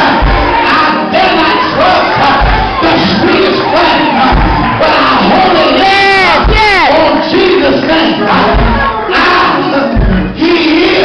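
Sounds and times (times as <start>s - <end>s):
congregation calling back: 0.0s - 11.0s
music: 0.0s - 11.0s
preacher chanting through microphone: 0.0s - 11.0s.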